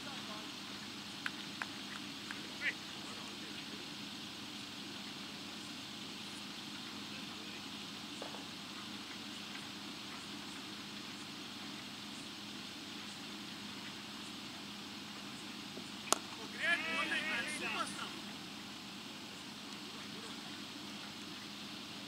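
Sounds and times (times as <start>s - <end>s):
steady background hum: 0.0s - 22.0s
cricket ball hitting bat: 16.1s - 16.4s
player shouting: 16.4s - 18.2s.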